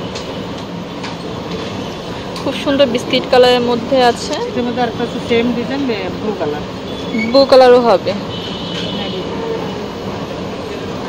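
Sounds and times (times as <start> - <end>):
rumbling background noise: 0.0 - 11.0.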